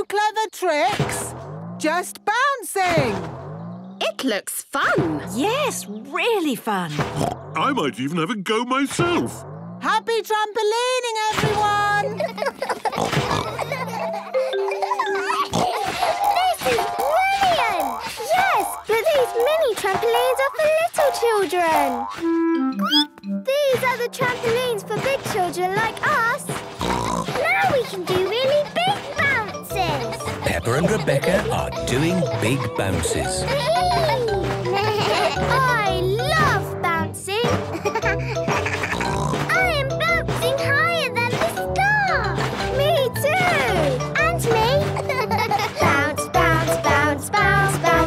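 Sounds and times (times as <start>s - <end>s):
light cartoon music: 9.0s - 48.0s
cartoon voices giggling and squealing: 11.8s - 19.7s, 27.3s - 36.5s
cartoon child voice crying: 33.5s - 36.3s.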